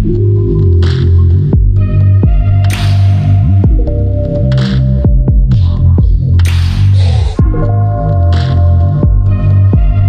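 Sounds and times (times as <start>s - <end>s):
electronic music with pulsing bass: 0.0s - 10.0s.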